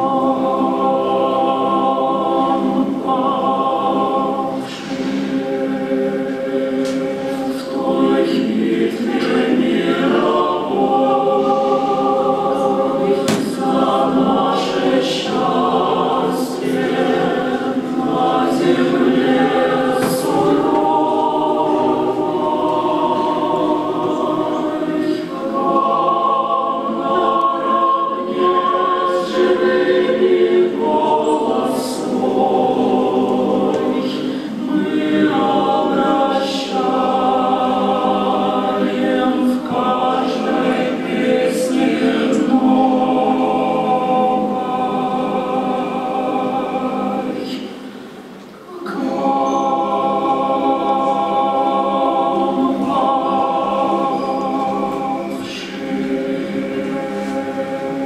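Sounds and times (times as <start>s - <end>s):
mixed choir singing chords: 0.0s - 58.0s.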